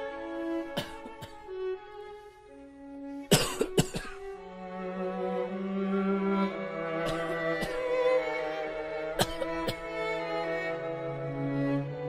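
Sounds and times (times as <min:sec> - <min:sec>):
string quartet sustained notes: 0:00.0 - 0:12.0
person coughing loudly: 0:00.8 - 0:01.4, 0:03.3 - 0:04.2, 0:07.1 - 0:07.8, 0:09.2 - 0:09.8.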